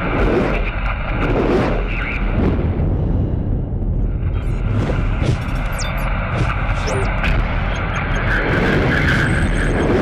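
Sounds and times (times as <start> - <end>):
loud steady rumble: 0.0 - 10.0.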